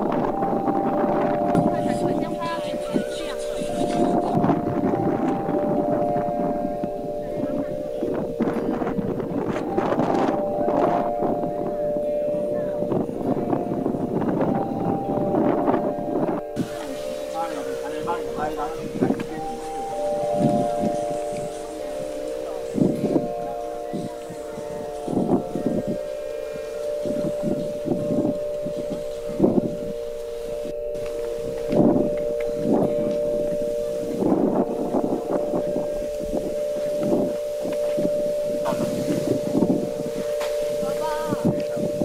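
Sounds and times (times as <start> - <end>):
steady held tones: 0.0 - 42.0
wind buffeting microphone: 0.0 - 42.0.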